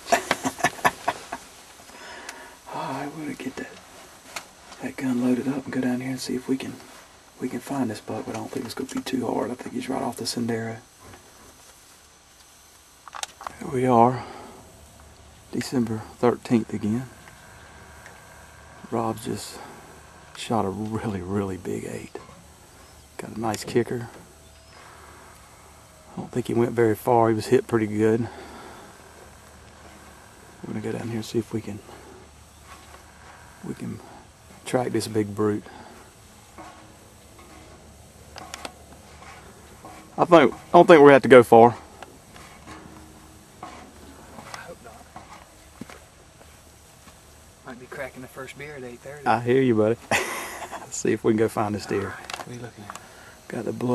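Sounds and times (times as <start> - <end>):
faint steady hiss: 0.0 - 53.9
low background noise: 0.0 - 53.9.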